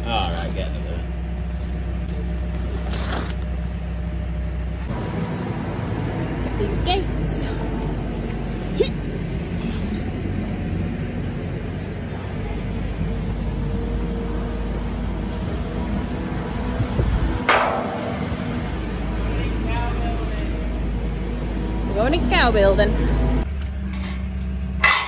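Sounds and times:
diesel engine running: 0:00.0 - 0:25.0.

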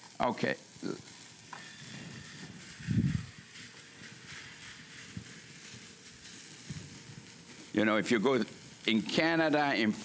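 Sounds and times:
batter sizzling in a pan: 0:00.0 - 0:10.0.

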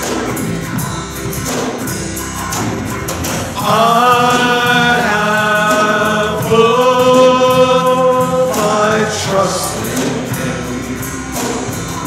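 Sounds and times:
bass guitar: 0:00.0 - 0:12.0
electric guitar: 0:00.0 - 0:12.0
people singing worship song: 0:03.6 - 0:12.0.

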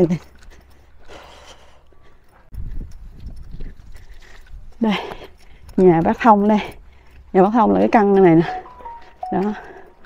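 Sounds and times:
footsteps walking: 0:02.0 - 0:10.0.

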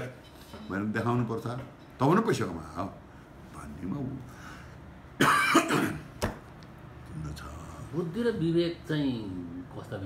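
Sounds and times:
man coughing: 0:05.2 - 0:06.1.

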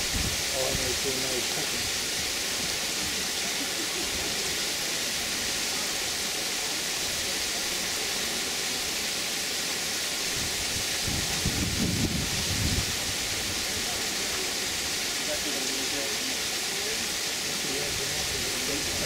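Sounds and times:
outdoor background hiss: 0:00.0 - 0:19.0
faint voices: 0:00.4 - 0:09.8, 0:13.2 - 0:19.0.

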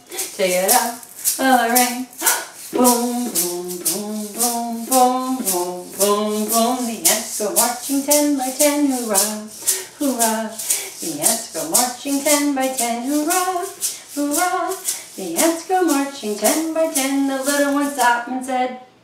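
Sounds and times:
hand-held shaker: 0:00.0 - 0:18.6
woman singing: 0:00.0 - 0:18.9.

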